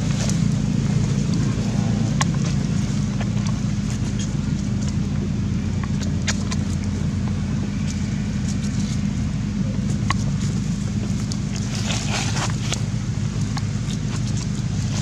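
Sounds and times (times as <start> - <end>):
low motor drone: 0.0 - 15.0
rustling: 0.0 - 15.0.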